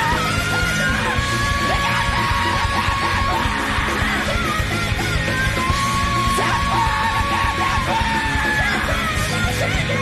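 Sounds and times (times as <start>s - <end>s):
high voice singing: 0.0s - 10.0s
rock band playing: 0.0s - 10.0s.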